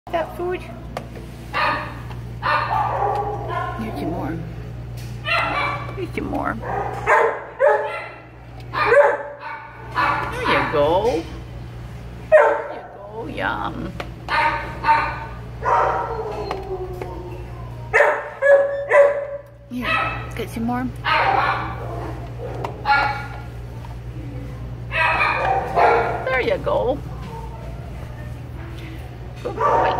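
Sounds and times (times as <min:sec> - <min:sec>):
steady low hum: 0:00.1 - 0:29.9
dogs barking: 0:01.5 - 0:04.5, 0:05.2 - 0:11.2, 0:12.2 - 0:13.1, 0:14.2 - 0:23.8, 0:24.8 - 0:28.3, 0:29.4 - 0:29.9.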